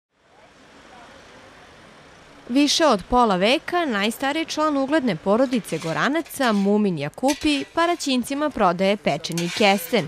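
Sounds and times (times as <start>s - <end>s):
distant voices: 0.2s - 10.0s
passing car traffic: 0.2s - 10.0s.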